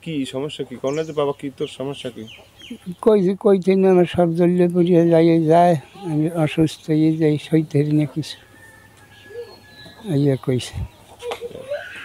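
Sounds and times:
faint high chirps: 8.4 - 11.0.

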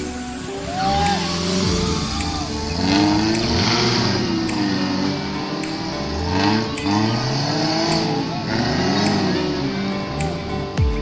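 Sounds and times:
engine revving under load: 0.0 - 10.8.

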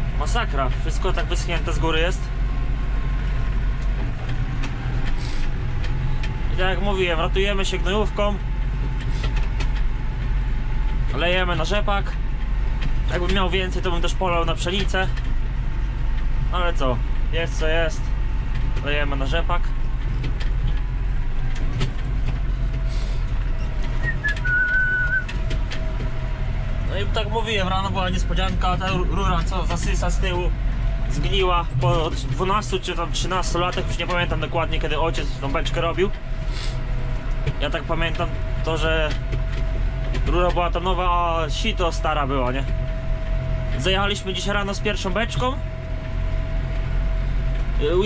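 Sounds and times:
cab rattling: 0.0 - 48.0
tractor engine hum: 0.0 - 48.0
short thin high whistle: 24.0 - 25.3.

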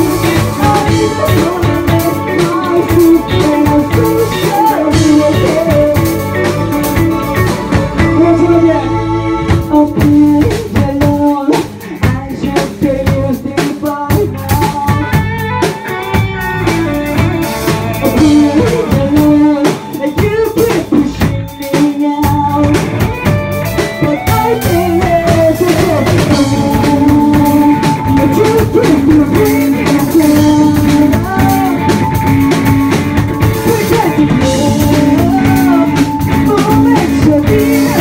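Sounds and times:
person singing: 0.0 - 16.3, 17.0 - 23.2, 23.8 - 38.0
live rock band: 0.0 - 38.0.

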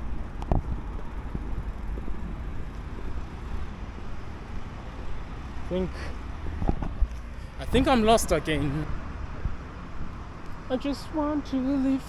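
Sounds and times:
wind rumbling on microphone: 0.0 - 5.6, 6.3 - 7.9
street traffic: 0.0 - 12.0.

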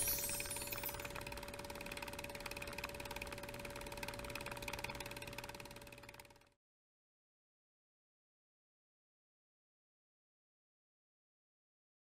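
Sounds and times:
sustained ringing tone: 0.0 - 1.2.

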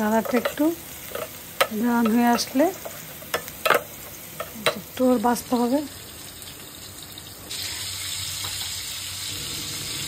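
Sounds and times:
onions sizzling in oil: 0.0 - 10.0.

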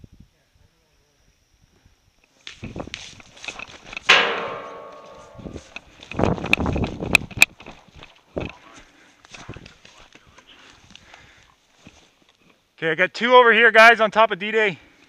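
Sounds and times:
loud ringing hit: 4.1 - 5.8
scattered knocks: 4.1 - 6.7.

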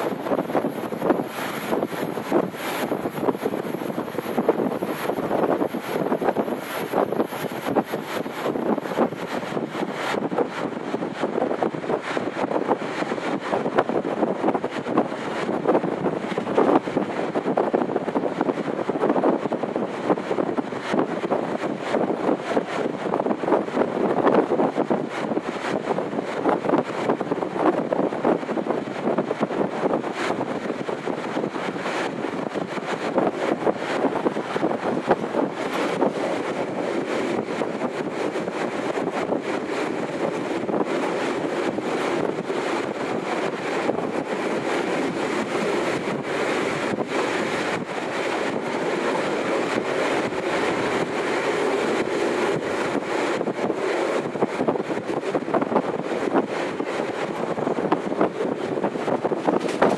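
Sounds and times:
train wheels rumbling on rails: 0.0 - 59.9
wind noise on microphone: 0.0 - 59.9.

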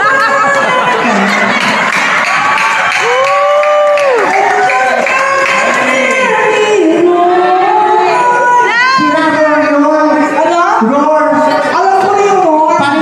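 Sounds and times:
crowd cheering and shouting: 0.0 - 13.0
person singing through pa: 4.0 - 13.0.

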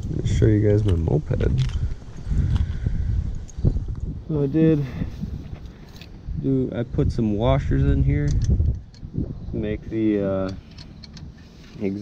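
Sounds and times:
low rumbling: 0.0 - 12.0.

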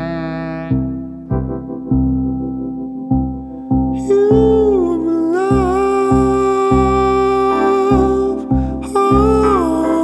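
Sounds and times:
man singing long held note: 0.0 - 1.0, 4.0 - 10.0
electric piano chords: 0.0 - 10.0.

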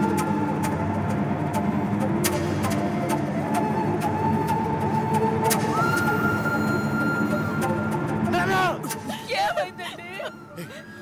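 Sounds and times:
dense film soundtrack: 0.0 - 11.0.

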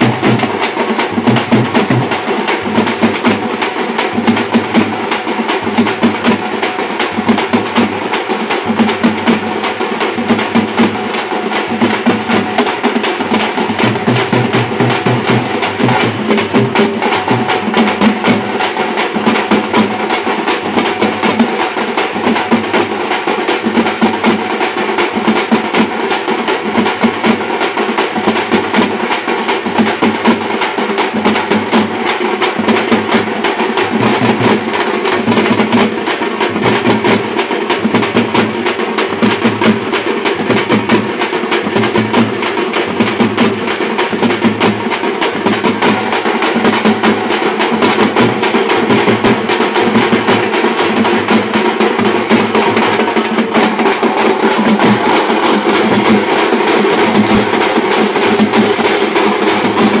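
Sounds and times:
frame drums beaten fast: 0.0 - 60.0.

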